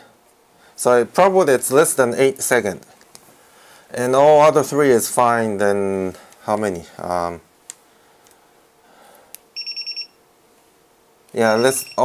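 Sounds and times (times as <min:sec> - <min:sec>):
multimeter high-pitched beeps: 0:09.6 - 0:10.2, 0:11.4 - 0:12.0.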